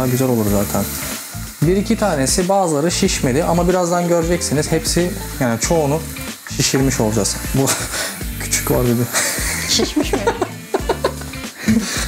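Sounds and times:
background music: 0:00.0 - 0:12.0
man laughing: 0:07.6 - 0:08.0, 0:09.0 - 0:12.0.

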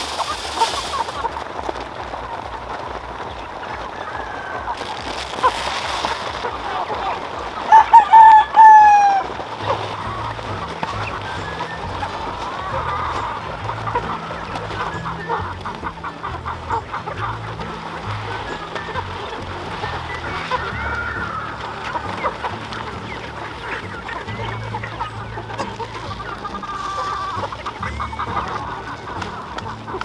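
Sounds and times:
chickens clucking: 0:00.0 - 0:30.0
rooster crowing: 0:03.9 - 0:05.0, 0:07.7 - 0:09.3.

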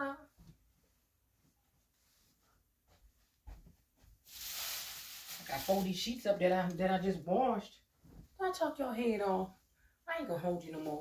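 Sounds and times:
cloth rustling: 0:01.3 - 0:06.2.

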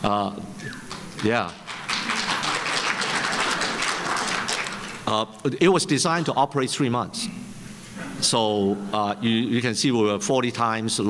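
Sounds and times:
audience applauding: 0:00.9 - 0:05.1.

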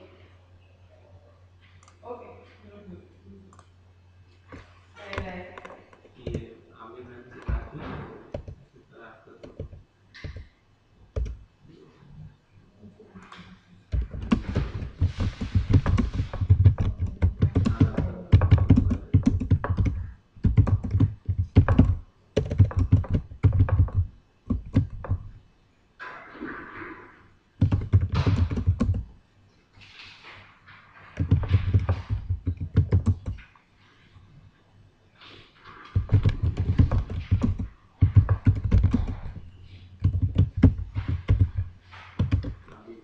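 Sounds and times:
typing on computer keyboard: 0:05.2 - 0:06.5, 0:08.3 - 0:08.6, 0:09.4 - 0:10.5, 0:11.2 - 0:11.4, 0:13.4 - 0:25.4, 0:27.6 - 0:29.2, 0:31.2 - 0:33.5, 0:35.7 - 0:42.8.

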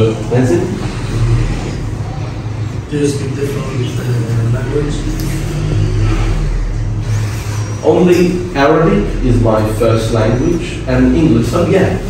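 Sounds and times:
steady low machinery drone: 0:00.0 - 0:12.0.

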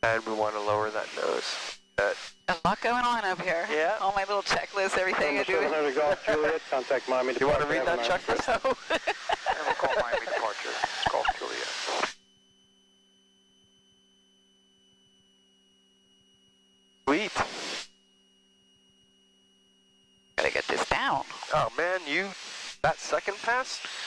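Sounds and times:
radio voice transmissions: 0:00.0 - 0:12.1, 0:17.1 - 0:17.5, 0:20.4 - 0:24.0
radio static: 0:00.0 - 0:12.2, 0:17.1 - 0:17.8, 0:20.4 - 0:24.0
faint electrical hum: 0:00.0 - 0:24.0.

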